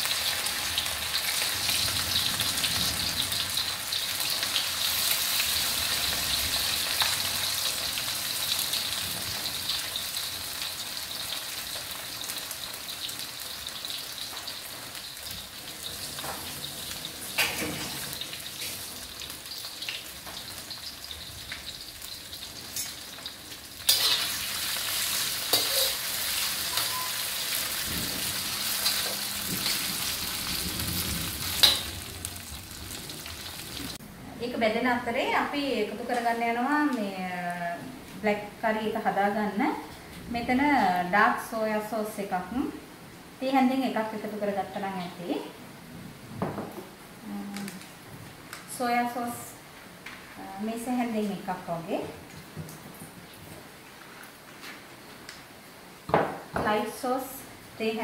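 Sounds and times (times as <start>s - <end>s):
meat sizzling in hot oil: 0.0s - 34.0s
utensil scraping a wok: 23.9s - 27.1s.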